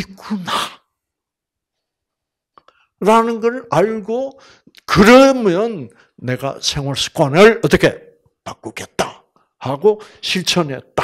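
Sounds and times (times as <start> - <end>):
man speaking: 0.0 - 0.8, 3.0 - 11.0.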